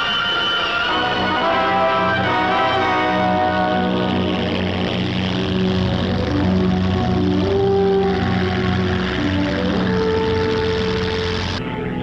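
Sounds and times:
film score music with held notes: 0:00.0 - 0:12.0
propeller engine drone: 0:00.0 - 0:12.0.

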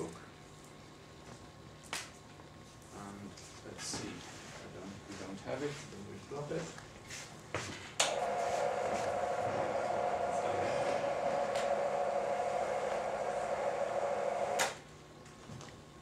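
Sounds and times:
projection screen motor hum: 0:06.2 - 0:16.0.

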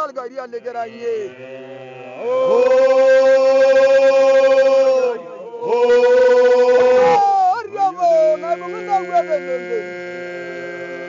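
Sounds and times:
low drone of voices: 0:00.6 - 0:11.0
men singing howl-like glides: 0:00.8 - 0:11.0.

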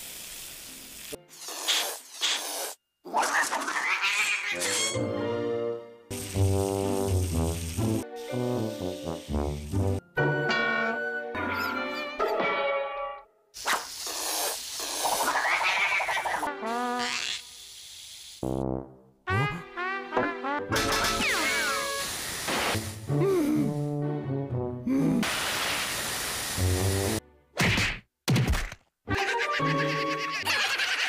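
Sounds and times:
water spraying from hose: 0:00.0 - 0:02.8, 0:06.1 - 0:10.0, 0:13.7 - 0:18.5, 0:20.9 - 0:23.2, 0:25.2 - 0:27.2
cartoon music: 0:19.3 - 0:22.0, 0:29.1 - 0:31.0
comic sound effects: 0:19.3 - 0:22.0.

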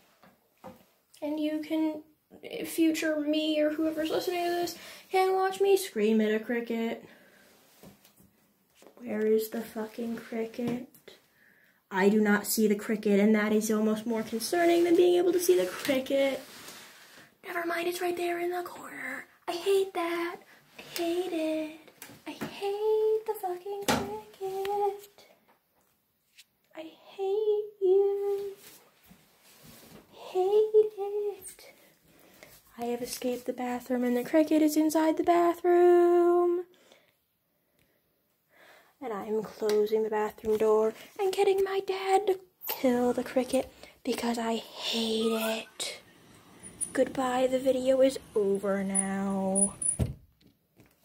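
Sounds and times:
person speaking: 0:42.7 - 0:46.1, 0:46.7 - 0:49.8.

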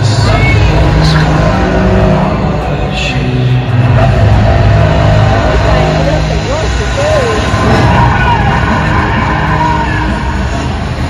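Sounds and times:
bass-heavy music over loudspeakers: 0:00.0 - 0:11.0
crowd noise: 0:00.0 - 0:11.0.

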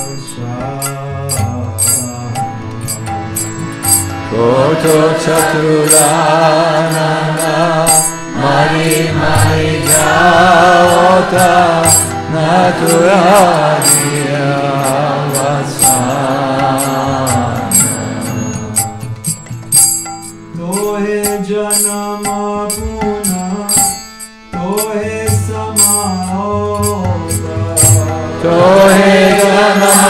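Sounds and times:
man singing devotional chant: 0:00.0 - 0:19.4, 0:20.5 - 0:30.0
hand cymbals clinking: 0:00.0 - 0:30.0
low drone: 0:01.8 - 0:21.9.

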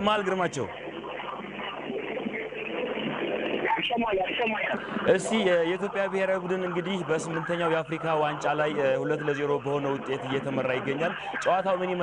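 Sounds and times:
man commentating on radio: 0:00.0 - 0:12.0.

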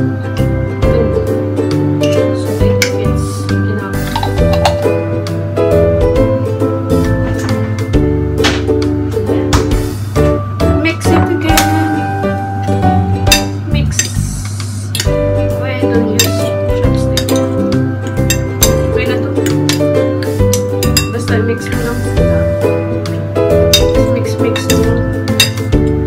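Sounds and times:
background music: 0:00.0 - 0:26.0
metal forks clinking against bowl: 0:04.0 - 0:04.8, 0:16.1 - 0:16.5, 0:17.1 - 0:21.3, 0:23.7 - 0:25.7.

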